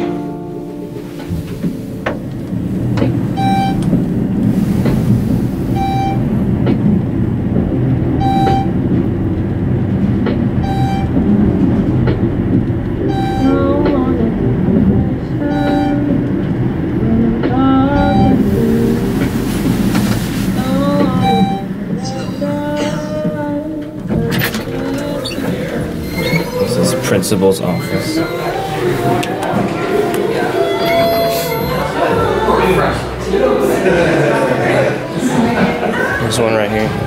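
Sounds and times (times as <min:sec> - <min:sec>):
elevator low rumble: 0:00.0 - 0:37.0
short electronic beep: 0:03.4 - 0:03.8, 0:05.7 - 0:06.3, 0:08.2 - 0:08.7, 0:10.6 - 0:11.2, 0:13.1 - 0:13.7, 0:15.5 - 0:16.0, 0:21.2 - 0:21.7, 0:27.7 - 0:29.2, 0:30.6 - 0:32.1.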